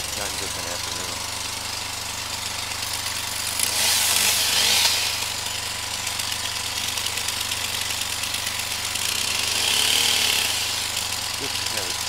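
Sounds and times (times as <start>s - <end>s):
truck engine idling: 0.0s - 12.0s
distant chainsaw cutting wood: 2.3s - 12.0s.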